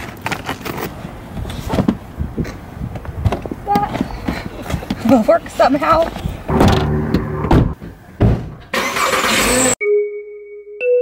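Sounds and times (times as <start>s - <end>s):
car engine running: 6.5s - 7.8s
sharp knocks: 6.5s - 8.7s.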